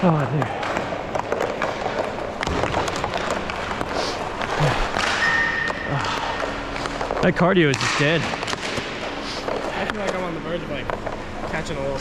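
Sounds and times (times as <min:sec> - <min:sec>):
skate wheels rolling on floor: 0:00.0 - 0:07.7
sticks and pucks clacking: 0:00.0 - 0:11.2.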